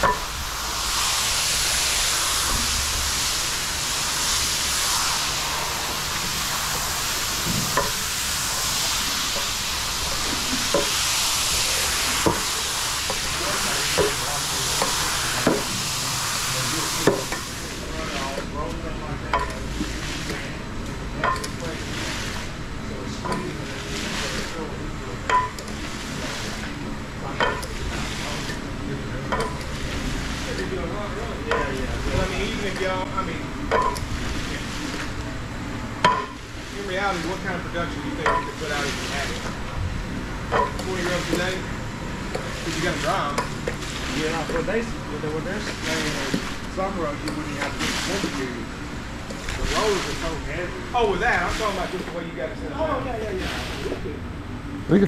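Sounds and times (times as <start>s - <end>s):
fizzing hiss of foam lather: 0.0s - 18.4s, 42.4s - 48.6s, 49.3s - 52.2s.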